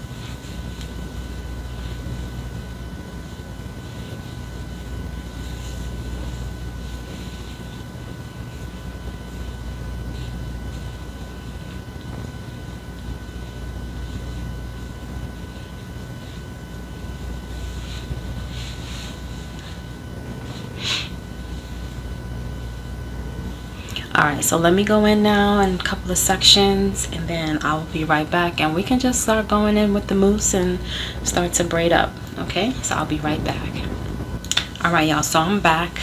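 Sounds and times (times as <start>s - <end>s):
hands rustling through wet hair: 0.0s - 22.2s
low mechanical hum: 0.0s - 36.0s.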